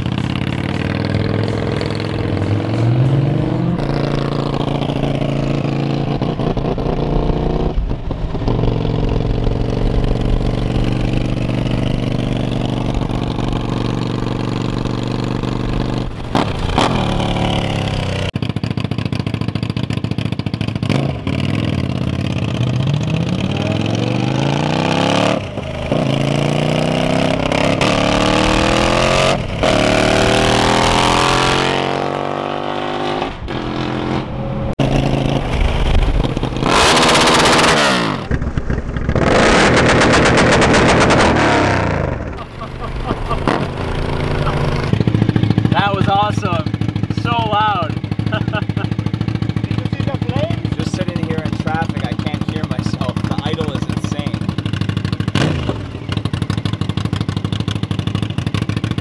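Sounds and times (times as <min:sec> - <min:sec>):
motorcycle accelerating through gears: 0:00.0 - 0:59.0.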